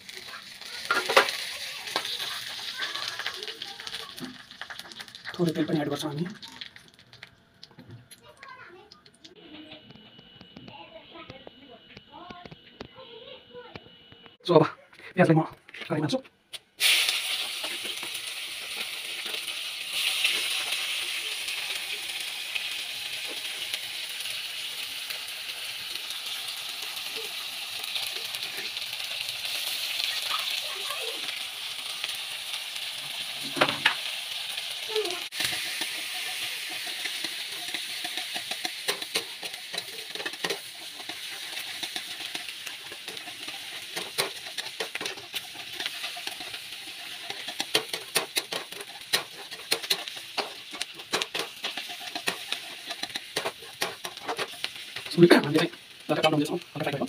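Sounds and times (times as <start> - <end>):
onions sizzling in hot oil: 0.0 - 8.6, 16.7 - 57.0
metal spatula scraping a pan: 35.2 - 55.6.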